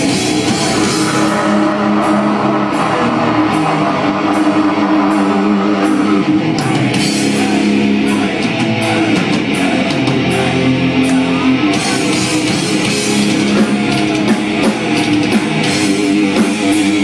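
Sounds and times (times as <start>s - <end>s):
cymbals crashing: 0.0s - 7.4s
distorted guitars and bass: 0.0s - 17.0s
drums: 0.0s - 17.0s.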